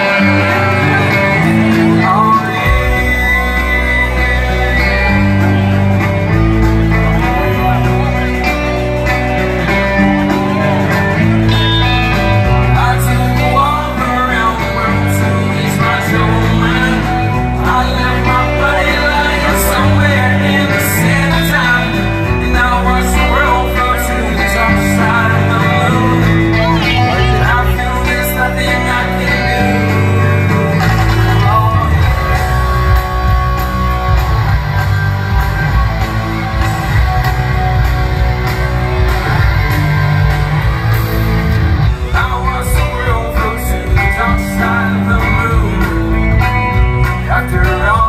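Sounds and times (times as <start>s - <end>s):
drums: 0.0s - 48.0s
electric guitars and bass: 0.0s - 48.0s
man singing lead: 0.0s - 48.0s.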